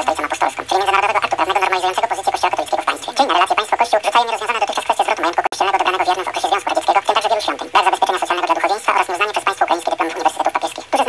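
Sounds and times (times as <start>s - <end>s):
high-pitched voice talking: 0.0s - 11.0s.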